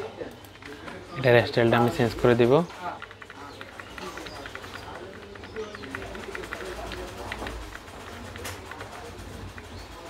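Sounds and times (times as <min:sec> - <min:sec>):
faint murmur of voices: 0:00.0 - 0:10.0
computer keyboard typing: 0:00.3 - 0:10.0.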